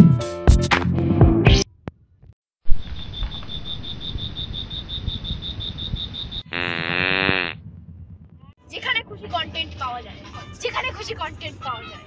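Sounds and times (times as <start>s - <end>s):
cricket chirping: 2.7s - 6.9s.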